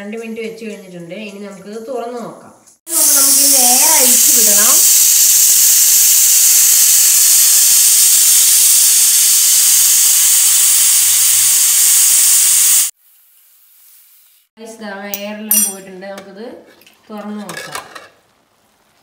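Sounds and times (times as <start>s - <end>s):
steam hissing from pressure cooker: 2.9s - 13.0s.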